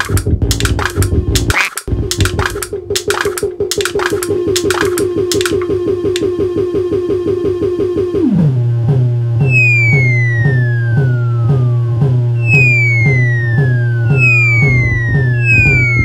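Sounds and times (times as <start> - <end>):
sharp noisy electronic clicks: 0.0 - 6.3
fast sequenced synthesizer pulse: 9.4 - 16.0.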